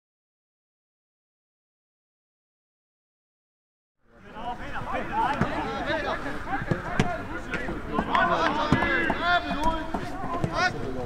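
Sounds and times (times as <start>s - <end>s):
people calling out: 4.2s - 11.0s.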